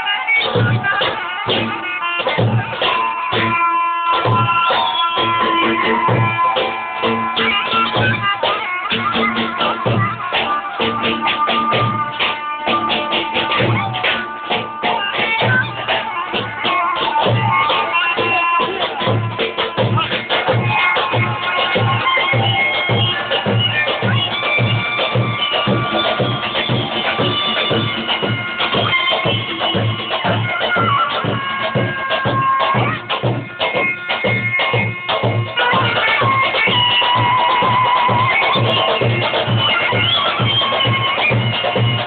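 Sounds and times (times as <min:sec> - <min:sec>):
shrill reed melody: 0:00.0 - 0:42.0
deep drum beats: 0:00.4 - 0:42.0.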